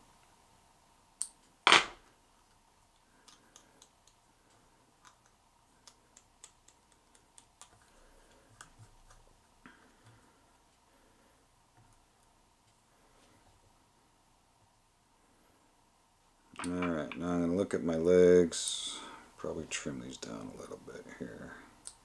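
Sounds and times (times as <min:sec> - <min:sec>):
light clicks and snips: 0:02.5 - 0:10.3.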